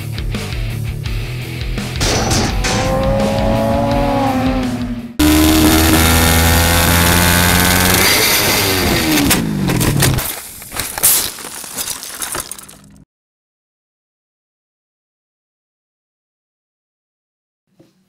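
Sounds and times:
intro music: 1.8s - 7.6s
sharp knock: 2.0s - 3.4s
motorcycle engine revving: 2.0s - 10.2s.

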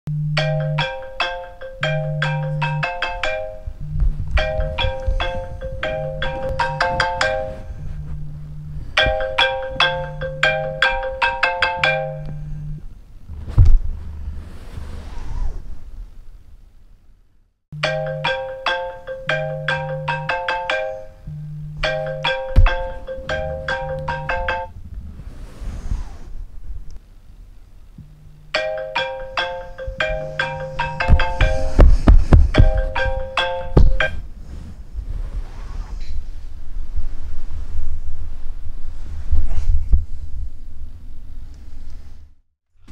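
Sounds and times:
marimba phone alarm melody: 0.1s - 12.8s, 17.8s - 24.8s, 28.1s - 34.3s
low rumbling: 1.8s - 17.2s, 21.2s - 28.6s
soft rustle: 3.6s - 9.4s, 12.4s - 16.5s, 24.7s - 27.0s, 34.1s - 42.4s.

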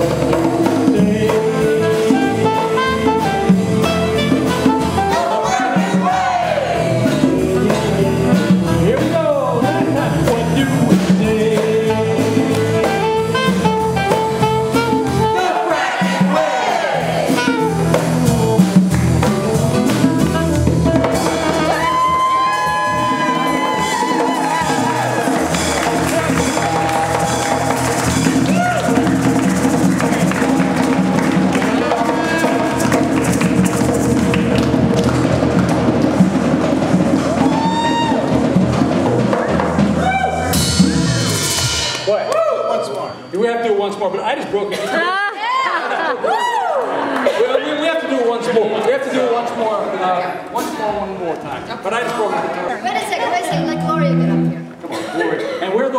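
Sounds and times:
group of voices singing: 0.0s - 4.1s, 4.8s - 13.6s, 15.2s - 21.8s
electric guitar: 53.4s - 54.9s.

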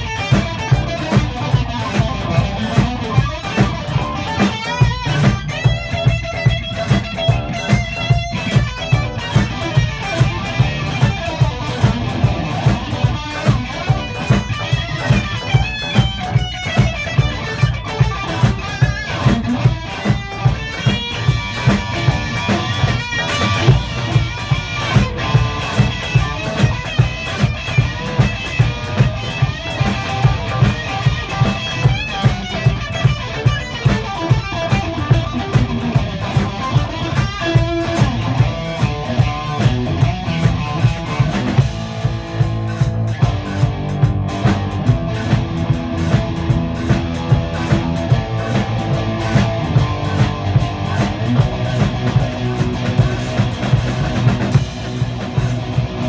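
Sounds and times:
electric guitars playing: 0.0s - 56.0s
steady beat: 0.0s - 56.0s.

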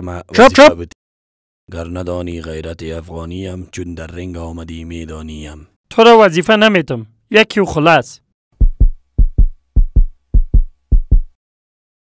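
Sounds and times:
heartbeat double thumps: 8.6s - 11.4s.

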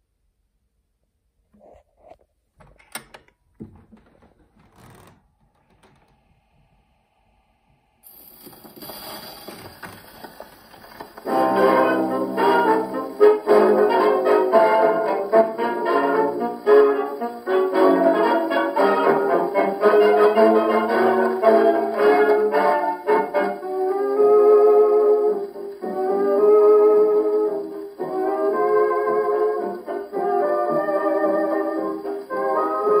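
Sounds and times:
record needle hiss and crackle: 3.7s - 33.0s.

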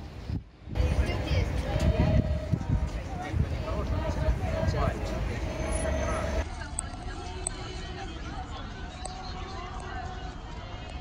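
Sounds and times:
crowd chatter: 0.7s - 11.0s
motor vehicle running: 0.8s - 6.5s.

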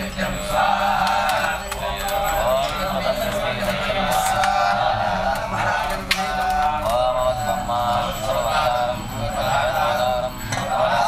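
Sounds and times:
men chanting mantras: 0.0s - 11.0s.

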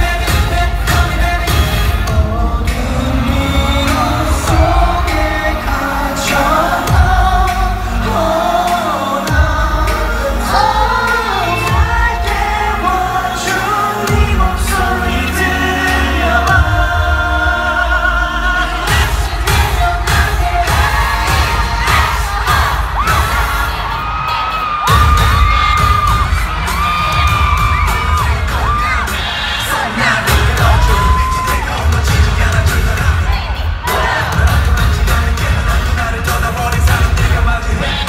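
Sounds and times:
pop song over sound system: 0.0s - 38.0s
crowd cheering: 18.9s - 38.0s.

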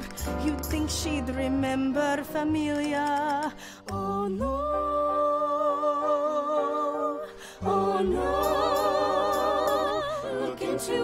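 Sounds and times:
voices singing together: 5.6s - 11.0s.

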